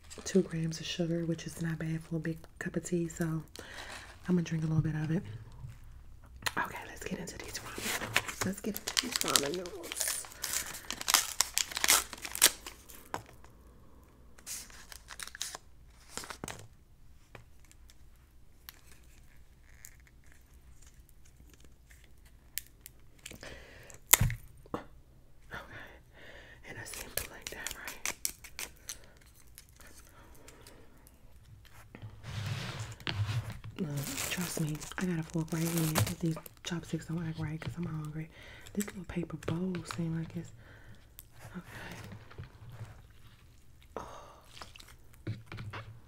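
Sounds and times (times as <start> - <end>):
paper wrapper tearing and crinkling: 7.4 - 13.2, 14.4 - 16.6, 26.9 - 30.1, 32.8 - 37.6.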